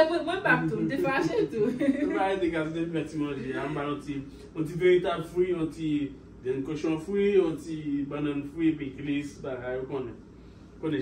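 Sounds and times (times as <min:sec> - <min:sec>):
man talking excitedly: 0:02.1 - 0:05.9.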